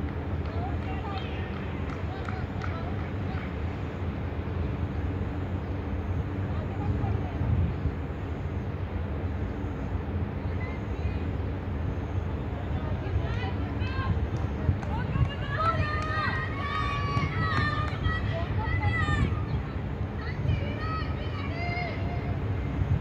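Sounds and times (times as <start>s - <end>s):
steady low rumble: 0.0s - 23.0s.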